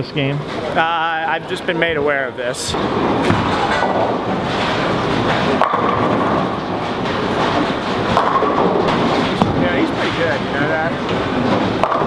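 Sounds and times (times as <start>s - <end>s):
rumble of balls and pins: 1.7s - 12.0s
bowling ball rolling down lane: 2.8s - 10.2s.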